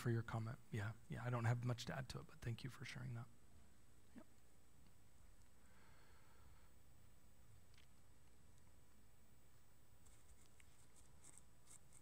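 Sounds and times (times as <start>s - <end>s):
faint scratchy rustles and ticks: 10.0s - 12.0s.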